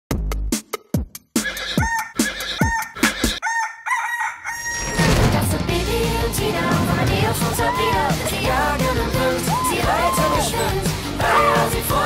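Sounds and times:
rooster crowing: 1.5 - 5.0, 9.5 - 10.6
band music: 5.6 - 12.0.

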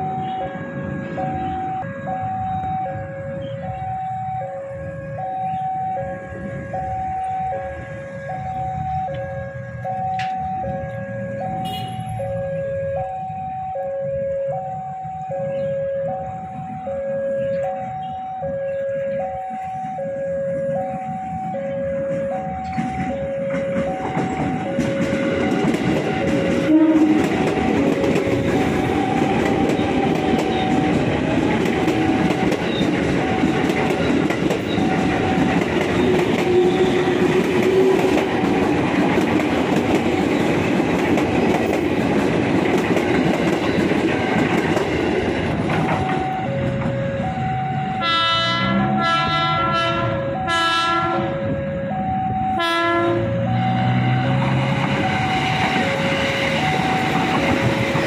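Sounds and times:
electric train passing: 0.0 - 58.0
level crossing alarm: 0.0 - 58.0.

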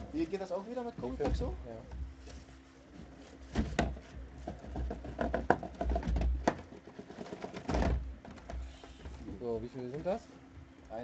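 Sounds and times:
cardboard boxes knocking and clicking: 0.8 - 2.1, 3.4 - 10.2.

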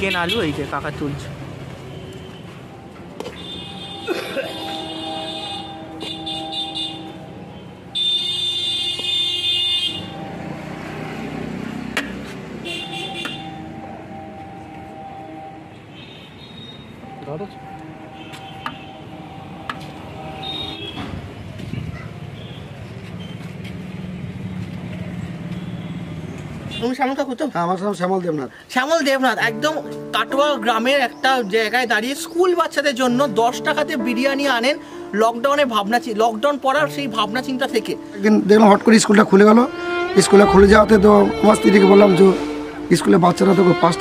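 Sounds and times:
vehicle horns blasting: 0.0 - 0.7, 3.2 - 10.9, 12.0 - 21.2, 25.5 - 27.0, 39.5 - 44.0
street noise: 0.0 - 44.0.

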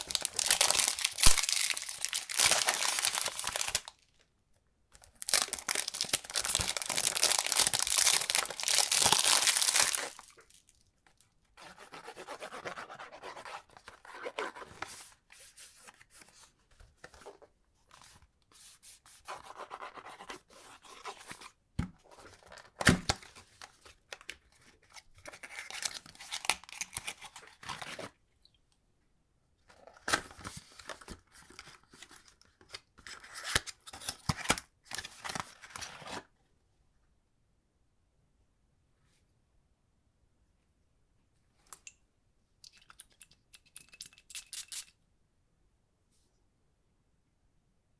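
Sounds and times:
plastic wrapper tearing: 0.0 - 4.0, 5.0 - 10.7.

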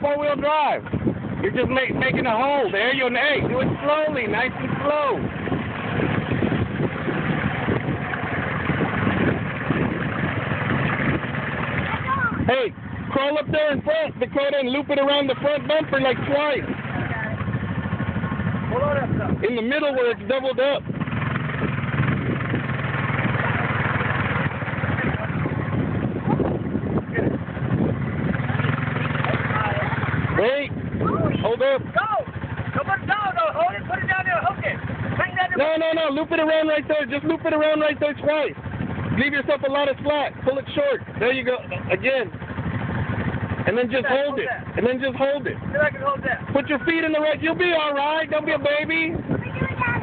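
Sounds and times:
atv engine running: 0.0 - 50.0.

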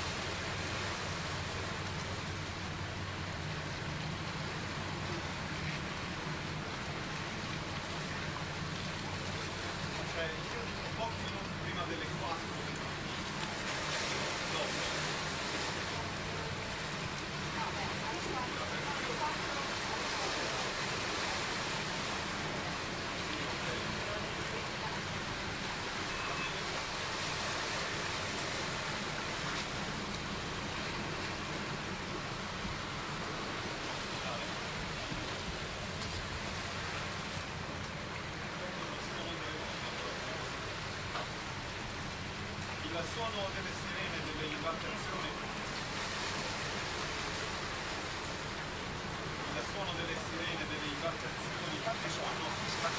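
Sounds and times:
low constant hum: 0.0 - 52.9
faint indistinct voices: 9.2 - 27.7.

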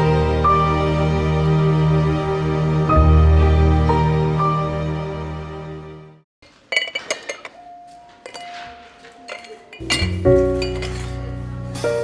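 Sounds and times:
glass tumblers clinking: 6.7 - 11.4.

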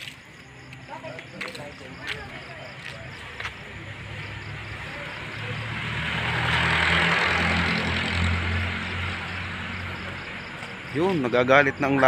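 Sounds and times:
vehicle passing by: 3.6 - 12.0.

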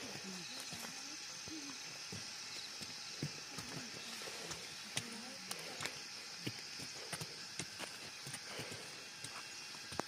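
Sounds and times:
steady high hiss: 0.0 - 10.0
hoes knocking stony soil: 2.0 - 10.0.

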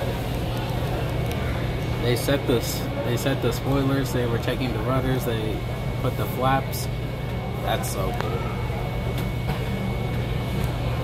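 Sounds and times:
low droning terminal hum: 0.0 - 11.0.

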